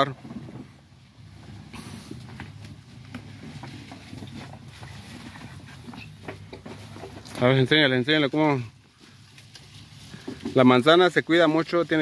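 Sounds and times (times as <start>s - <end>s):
rustling: 0.2s - 12.0s.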